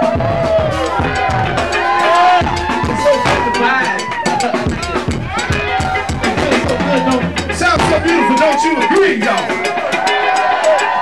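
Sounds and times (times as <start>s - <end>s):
kick and snare drum beat: 0.0s - 11.0s
live funk band playing: 0.0s - 11.0s.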